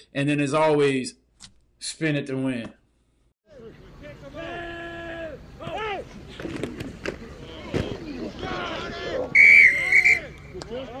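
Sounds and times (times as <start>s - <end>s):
shrill whistle blast: 9.4s - 10.3s.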